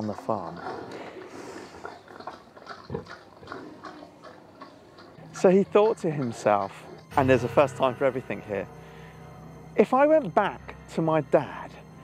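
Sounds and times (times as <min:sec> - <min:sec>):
pig eating at trough: 0:00.0 - 0:07.1
pig grunting: 0:00.0 - 0:07.1.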